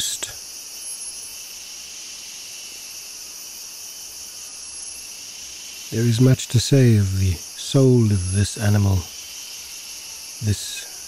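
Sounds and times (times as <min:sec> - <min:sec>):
insects droning: 0:00.0 - 0:11.0.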